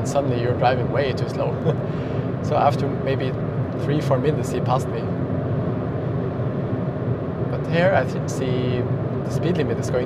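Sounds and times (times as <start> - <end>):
car road and wind noise: 0.0 - 10.0.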